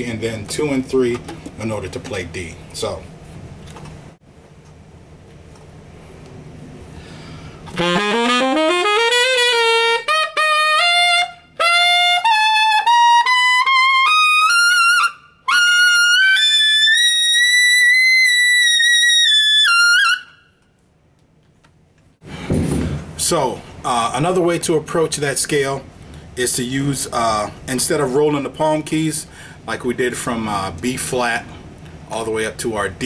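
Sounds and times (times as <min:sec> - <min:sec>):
tenor saxophone playing a scale: 0:07.7 - 0:20.4.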